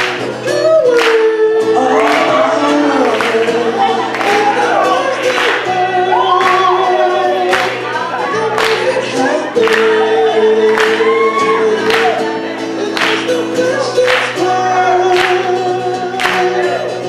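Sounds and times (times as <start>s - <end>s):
acoustic guitar strumming: 0.0s - 17.0s
people singing: 0.0s - 17.0s.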